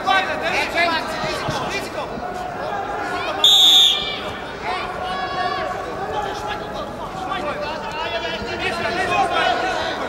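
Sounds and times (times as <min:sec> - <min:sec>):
murmur of voices: 0:00.0 - 0:10.0
referee's whistle blast: 0:03.4 - 0:04.1.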